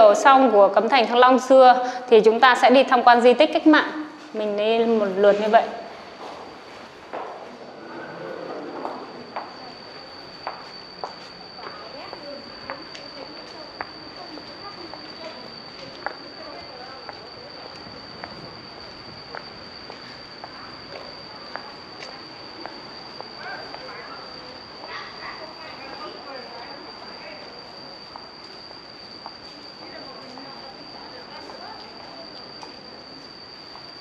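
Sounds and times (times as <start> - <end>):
high-pitched whine: 3.7 - 34.0.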